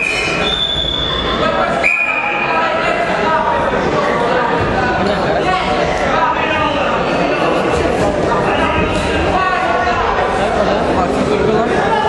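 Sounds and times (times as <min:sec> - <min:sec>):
referee's whistle blasts: 0:00.0 - 0:02.6
sports hall noise: 0:00.0 - 0:12.0.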